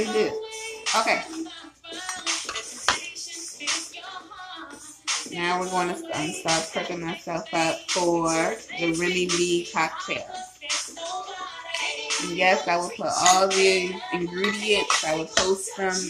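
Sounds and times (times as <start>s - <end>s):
background music with singing: 0.0s - 16.0s
glassware and utensils clinking: 2.0s - 3.0s, 11.7s - 15.6s.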